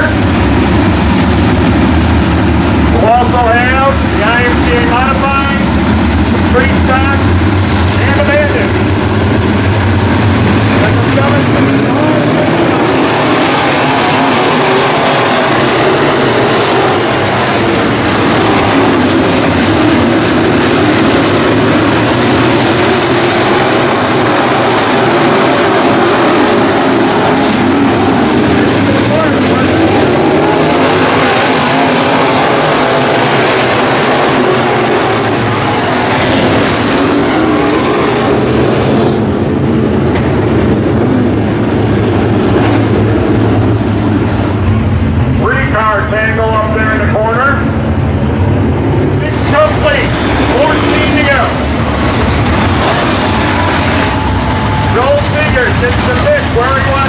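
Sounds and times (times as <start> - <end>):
race car engines running hard: 0.0 - 57.0.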